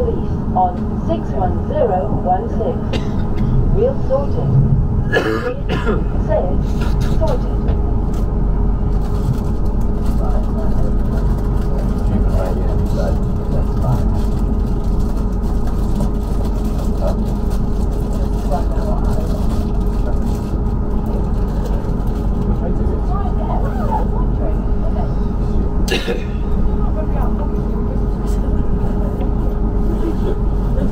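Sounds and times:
train traction hum: 0.0 - 30.9
train wheels rumbling on rail: 0.0 - 30.9.

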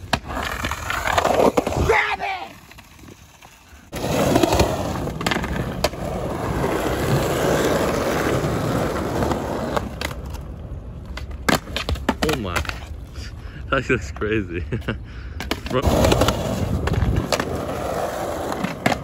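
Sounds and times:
skateboard clattering on concrete: 0.0 - 10.4, 15.4 - 19.0
skateboard wheels rolling on concrete: 0.0 - 19.0.

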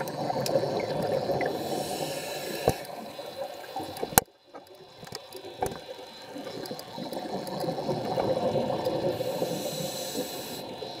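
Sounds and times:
high hiss: 0.0 - 11.0
diver breathing through regulator: 1.4 - 3.2, 8.9 - 11.0.

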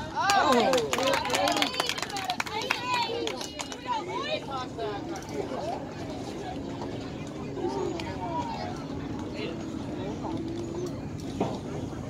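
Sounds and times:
distant voices talking: 0.0 - 12.0
outdoor background noise: 0.0 - 12.0.

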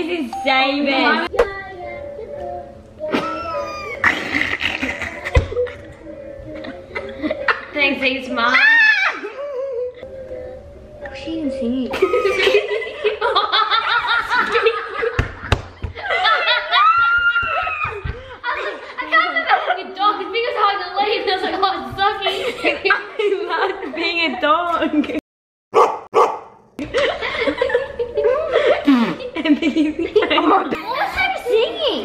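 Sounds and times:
voices: 0.0 - 15.1
girls laughing: 3.0 - 10.1, 11.8 - 25.2, 26.8 - 32.0
dog barking: 25.7 - 26.6.

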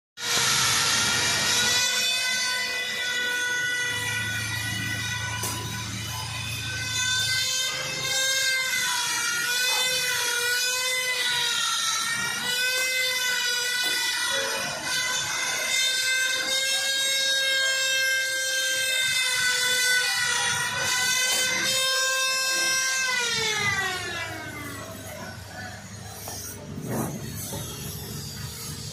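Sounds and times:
hydraulic system whining: 0.2 - 28.9.

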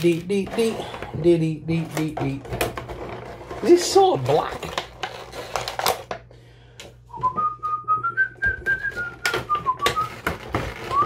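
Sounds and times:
plastic packaging crinkling: 1.8 - 6.3, 8.9 - 11.0
man whistling a tune: 7.1 - 10.2.

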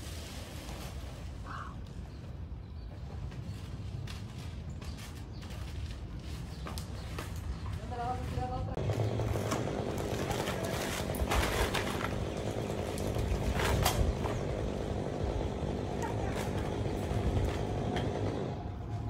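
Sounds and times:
rough power equipment motor: 8.8 - 19.0.

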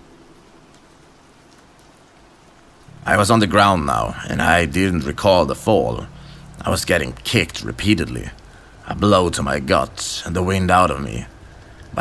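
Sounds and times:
steady rain hiss: 0.0 - 12.0
person narrating: 2.9 - 12.0.

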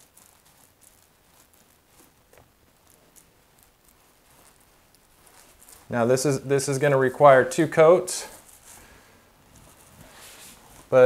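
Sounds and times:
paint roller sticky crackling: 0.0 - 11.0.

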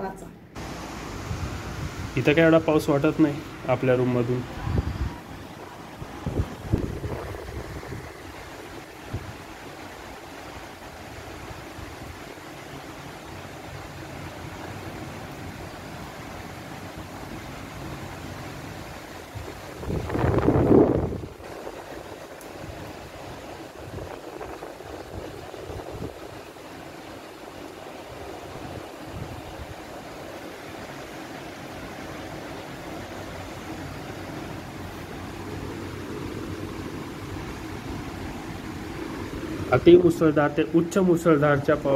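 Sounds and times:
torrential storm rain: 0.6 - 41.9.

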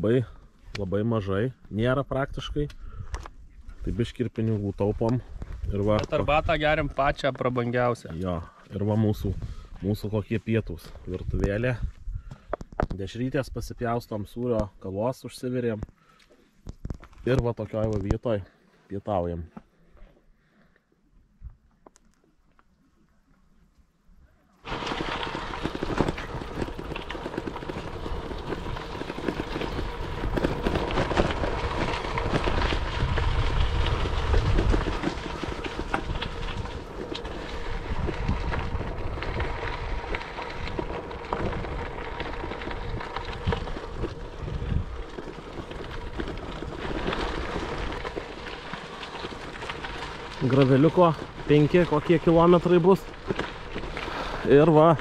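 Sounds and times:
wind rumbling on microphone: 2.1 - 7.2, 9.0 - 10.2, 10.9 - 13.9, 24.7 - 55.0
tyres rolling on gravel: 3.9 - 11.9, 24.6 - 55.0.

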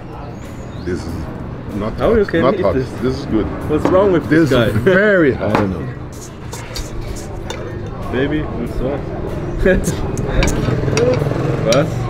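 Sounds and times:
scattered voices: 0.0 - 12.0
vehicle engine rumbling: 7.2 - 12.0.

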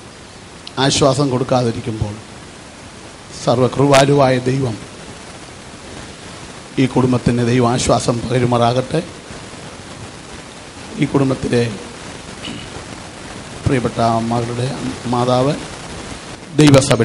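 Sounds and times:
steady hiss: 0.0 - 17.0
man talking: 0.8 - 2.2, 3.3 - 4.8, 6.8 - 9.2, 10.9 - 11.9, 13.6 - 15.7, 16.5 - 17.0.

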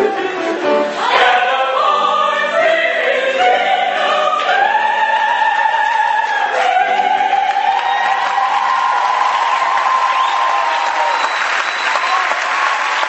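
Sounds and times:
opera singers singing: 0.0 - 9.2.

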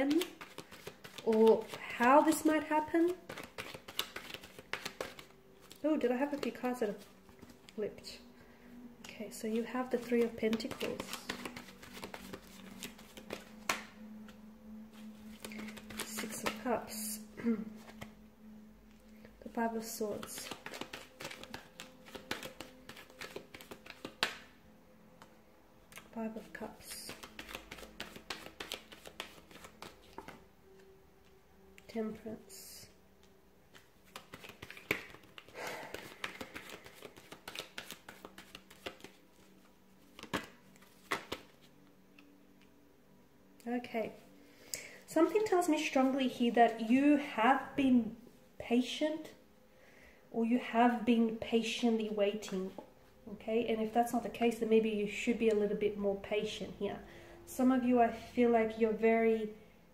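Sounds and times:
cards shuffling: 0.0 - 7.8, 9.5 - 17.0, 17.8 - 18.1, 19.8 - 24.5, 26.0 - 31.4, 33.2 - 42.3
cards snapping and sliding on table: 3.3 - 5.3, 20.4 - 24.5, 27.1 - 30.4, 33.7 - 39.1, 40.2 - 41.5.

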